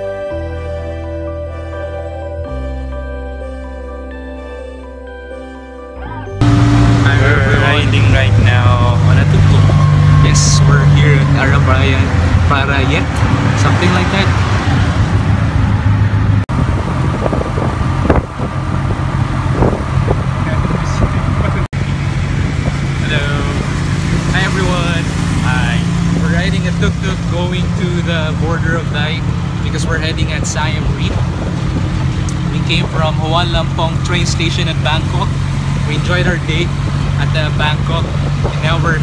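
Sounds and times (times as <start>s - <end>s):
small engine droning: 0.0s - 39.0s.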